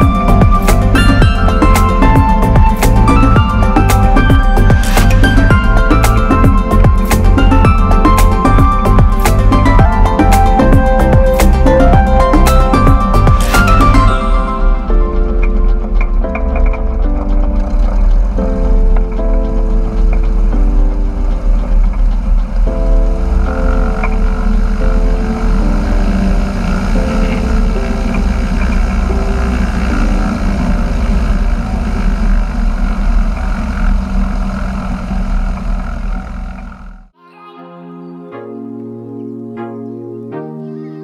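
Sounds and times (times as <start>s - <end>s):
background music: 0.0s - 32.9s, 37.1s - 41.0s
plane engine and propeller drone: 0.0s - 37.2s.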